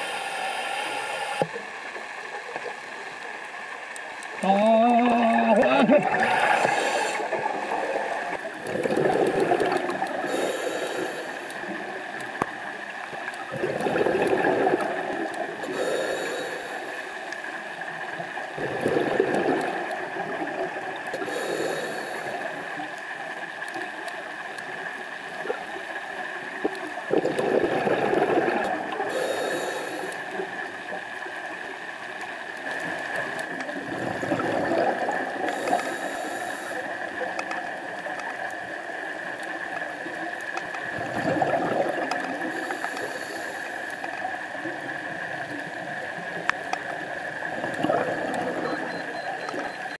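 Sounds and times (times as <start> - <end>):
regulator inhalation hiss: 0.0 - 1.5, 10.2 - 11.5, 15.7 - 17.1, 21.2 - 22.4, 29.1 - 30.2, 35.5 - 36.9, 42.5 - 43.9
underwater hiss: 0.0 - 2.6, 6.1 - 12.0, 13.5 - 17.6, 21.2 - 23.7, 27.1 - 30.5, 34.0 - 37.2, 41.1 - 45.7
constant high hum: 0.0 - 50.0
faint clicks: 1.2 - 5.1, 11.0 - 15.5, 21.9 - 27.4, 32.0 - 33.8, 35.2 - 40.9, 41.9 - 50.0
exhaled bubbles rumbling: 4.4 - 10.4, 11.6 - 15.9, 18.1 - 21.4, 26.4 - 29.2, 32.7 - 35.8, 40.1 - 43.2, 44.5 - 49.8.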